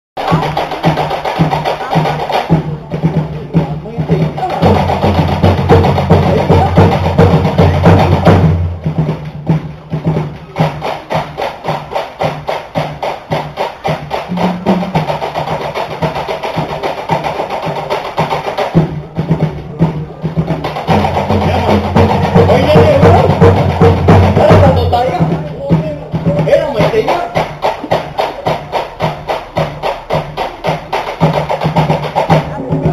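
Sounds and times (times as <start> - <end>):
deep drum: 0.2 - 32.9
slit drums beating fast rolls: 0.2 - 32.9.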